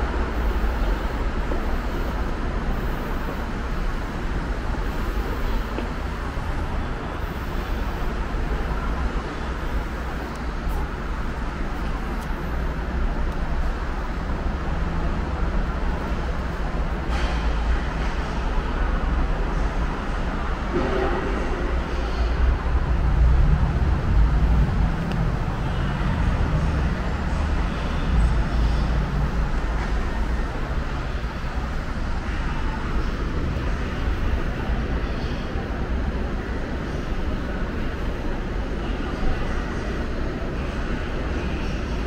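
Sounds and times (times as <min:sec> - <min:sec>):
monorail train rumbling: 0:00.0 - 0:42.0.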